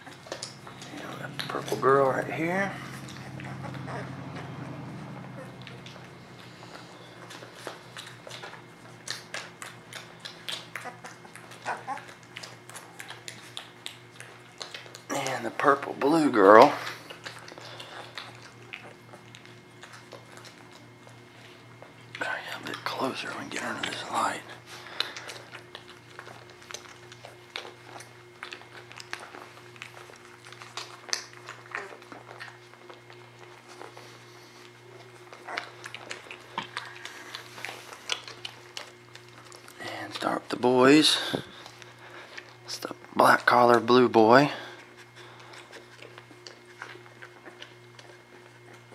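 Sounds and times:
puppies squeaking and whimpering: 0:00.0 - 0:15.0, 0:28.9 - 0:38.6
steady low hum: 0:00.0 - 0:48.9.

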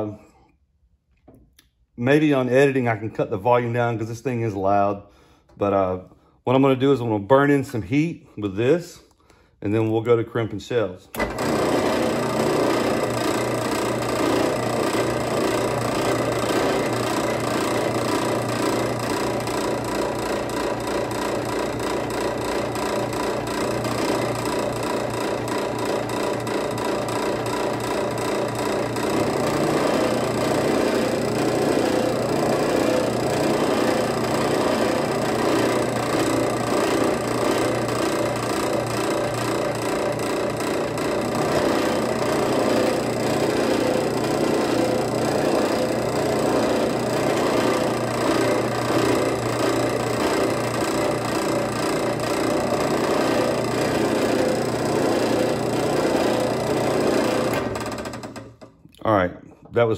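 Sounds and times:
drill press running: 0:11.1 - 0:58.8.

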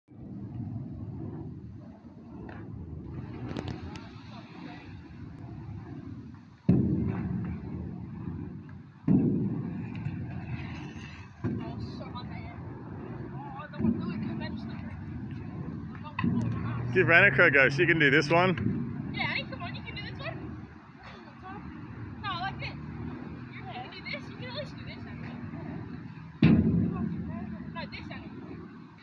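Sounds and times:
scooter wheels rolling on concrete: 0:00.1 - 0:29.0.

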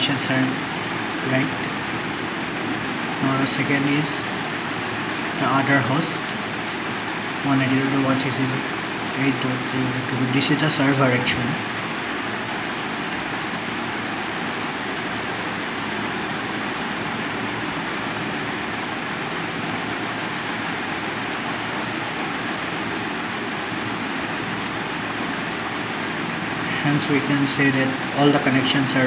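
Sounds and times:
steady rushing noise: 0:00.0 - 0:29.0.

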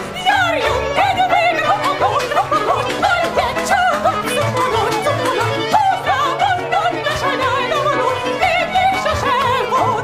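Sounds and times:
small band with violin and clarinet: 0:00.0 - 0:10.0
woman singing with vibrato: 0:00.0 - 0:10.0.

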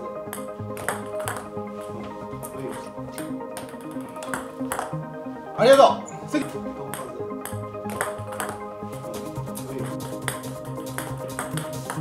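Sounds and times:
background music: 0:00.0 - 0:12.0
table tennis ball clicks: 0:00.3 - 0:01.5, 0:03.2 - 0:05.0, 0:06.9 - 0:08.6, 0:10.2 - 0:12.0.

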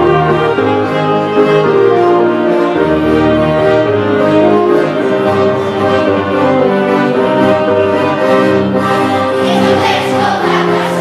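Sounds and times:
violin and saxophone carol: 0:00.0 - 0:10.9
children's choir singing: 0:08.3 - 0:11.0.

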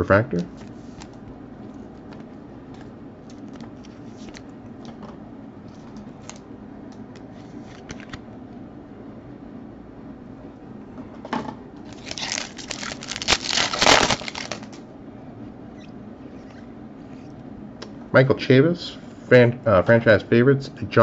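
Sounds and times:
plastic wrapper tearing and crinkling: 0:11.9 - 0:14.8.

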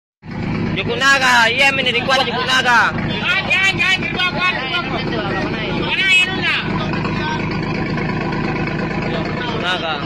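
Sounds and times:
boat engine throbbing: 0:00.2 - 0:10.0
voices: 0:00.7 - 0:10.0.

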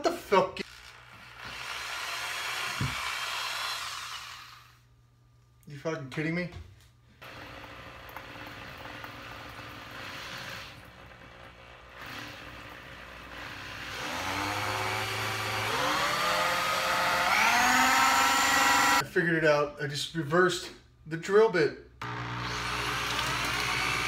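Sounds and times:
cordless drill whining: 0:00.6 - 0:04.8, 0:09.2 - 0:19.0, 0:22.0 - 0:24.0.

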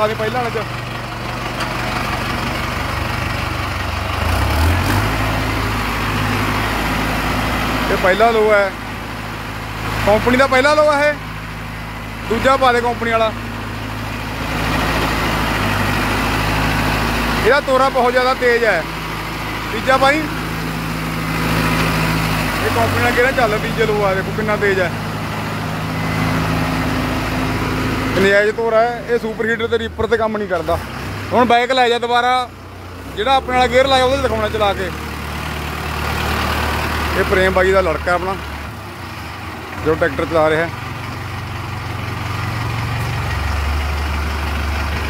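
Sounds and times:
man's voice: 0:00.0 - 0:00.7, 0:22.6 - 0:25.0, 0:28.1 - 0:30.8, 0:33.2 - 0:35.0
tractor diesel engine running: 0:00.0 - 0:45.0.

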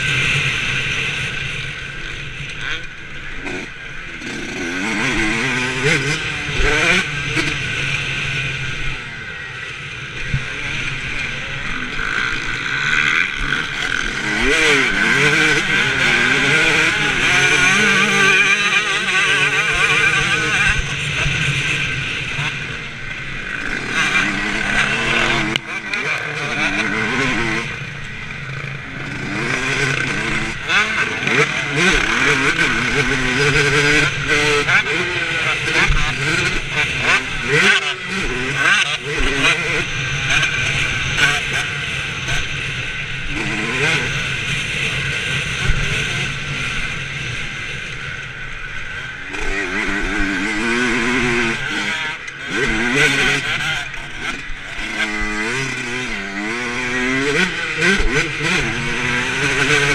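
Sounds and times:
motocross bike engine revving: 0:00.0 - 0:59.9.

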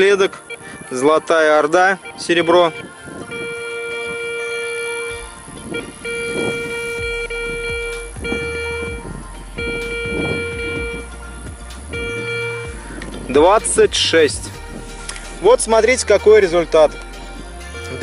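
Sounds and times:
metal detector buzzy tone: 0:01.6 - 0:11.1, 0:11.9 - 0:12.7.

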